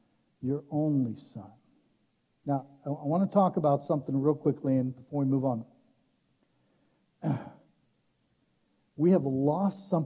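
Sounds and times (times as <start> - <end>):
man clearing his throat: 7.2 - 7.7.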